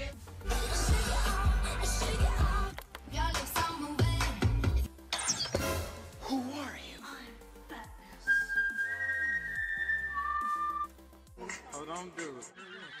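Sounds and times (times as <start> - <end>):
background music: 0.0 - 13.0
long whistled notes: 8.2 - 11.0.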